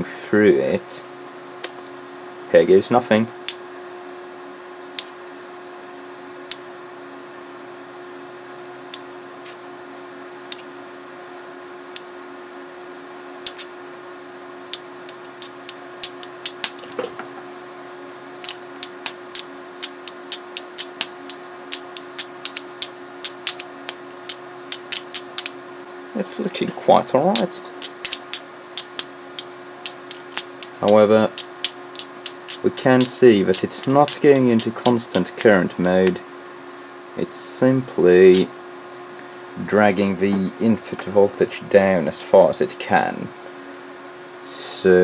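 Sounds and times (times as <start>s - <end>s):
steady hum: 0.0s - 45.0s.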